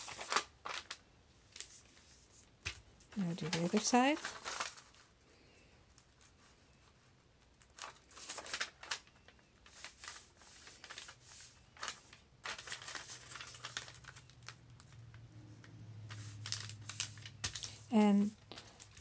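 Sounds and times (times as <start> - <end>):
paper crinkling and rustling: 0.0 - 5.2, 5.9 - 19.0.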